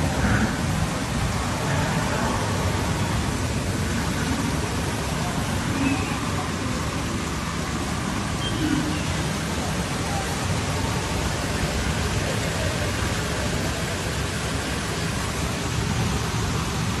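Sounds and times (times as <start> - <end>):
floodwater rushing: 0.0 - 17.0
heavy rain: 0.0 - 17.0.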